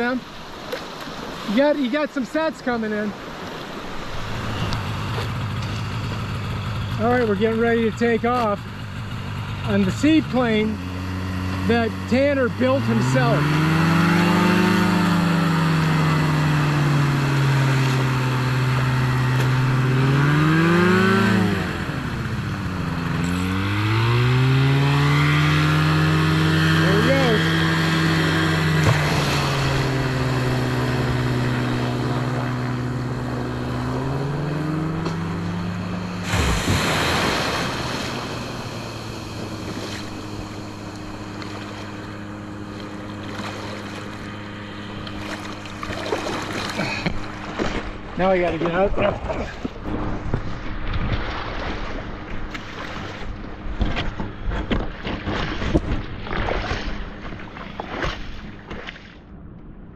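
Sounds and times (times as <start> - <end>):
aircraft engine and propeller: 0.0 - 59.9.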